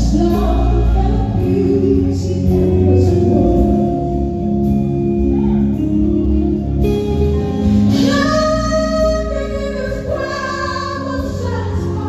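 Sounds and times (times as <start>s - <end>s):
woman singing gospel song: 0.0s - 4.2s, 7.9s - 12.0s
bass guitar: 0.0s - 12.0s
drums: 0.0s - 12.0s.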